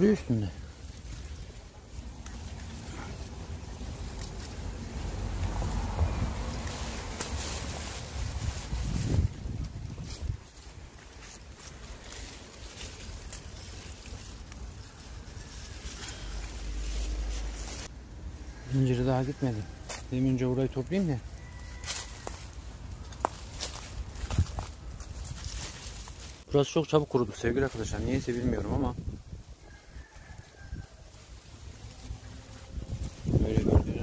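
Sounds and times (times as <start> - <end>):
wind on microphone: 8.0 - 10.5, 28.1 - 29.7, 32.6 - 34.0.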